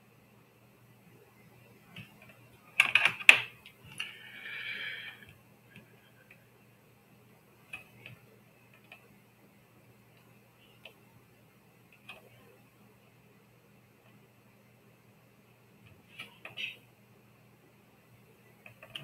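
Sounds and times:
faint electrical hum: 0.0 - 19.0
keyboard and mouse clicks: 2.0 - 4.1, 7.7 - 9.1, 18.6 - 19.0.

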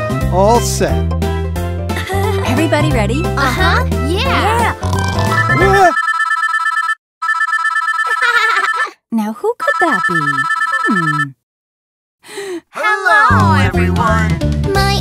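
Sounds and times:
children's music: 0.1 - 6.0, 12.8 - 15.0
person speaking: 2.3 - 6.0, 8.1 - 11.4
telephone ringing: 5.4 - 9.0, 9.6 - 11.3.

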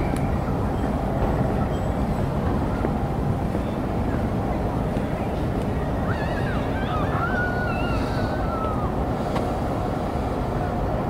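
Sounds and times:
water rushing: 0.0 - 11.0.

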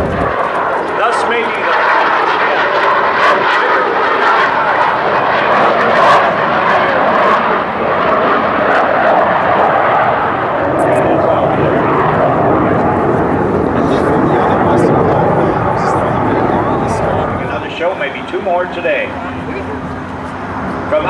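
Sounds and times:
jet flying overhead: 0.0 - 21.0.

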